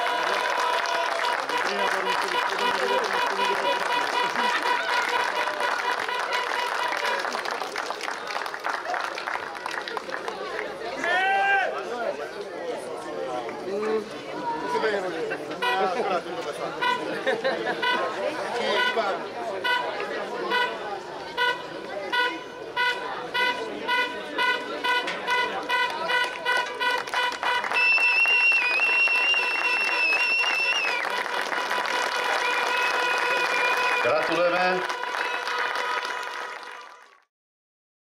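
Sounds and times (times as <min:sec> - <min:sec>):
rapid horn toots: 0:00.0 - 0:07.4, 0:15.6 - 0:16.0, 0:16.8 - 0:17.1, 0:17.8 - 0:36.4
crowd chatter: 0:00.0 - 0:37.2.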